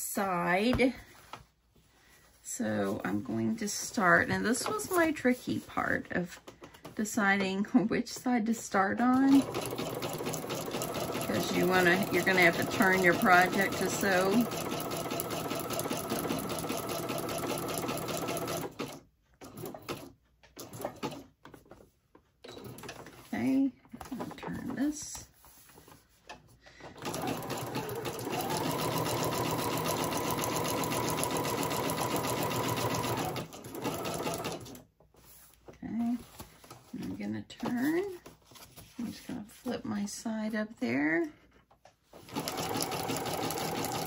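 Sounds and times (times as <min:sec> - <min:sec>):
sewing machine stitching: 0:09.1 - 0:21.3, 0:27.0 - 0:34.8, 0:42.2 - 0:44.0.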